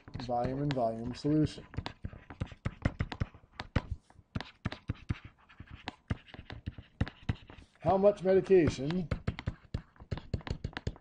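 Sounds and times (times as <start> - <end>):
stylus tapping on touchscreen: 0.0 - 11.0.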